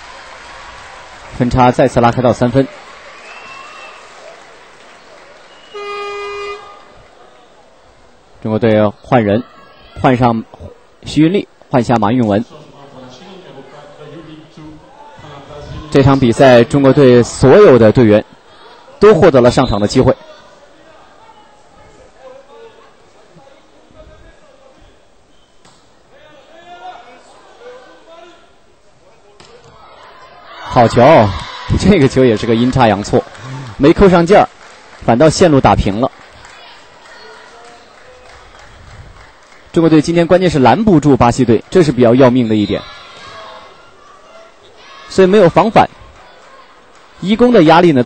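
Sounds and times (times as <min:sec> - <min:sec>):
crowd applauding: 0:00.0 - 0:06.9, 0:32.0 - 0:40.6
voices in hall: 0:00.0 - 0:48.0.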